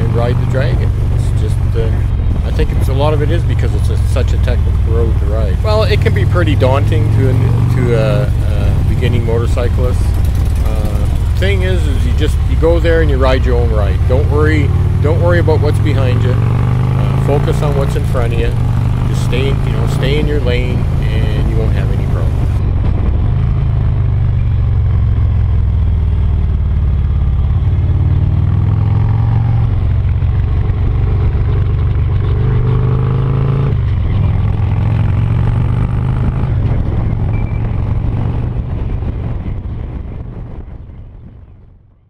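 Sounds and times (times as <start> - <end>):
wind noise: 0.0 - 32.7, 33.7 - 42.0
motorcycle engine revving: 0.0 - 40.6
road noise: 0.0 - 42.0.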